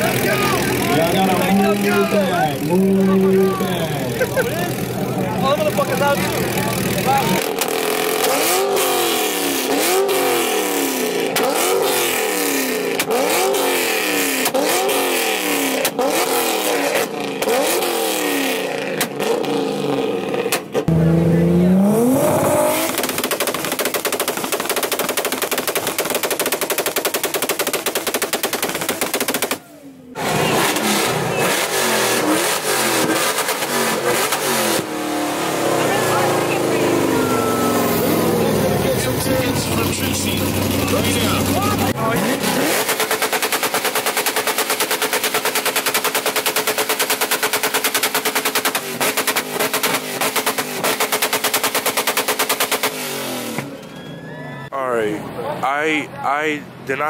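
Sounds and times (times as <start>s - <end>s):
crowd noise: 0.0s - 13.4s, 28.8s - 45.6s, 53.0s - 57.0s
exhaust crackling stutter: 0.0s - 53.9s
car engines revving: 0.0s - 57.0s.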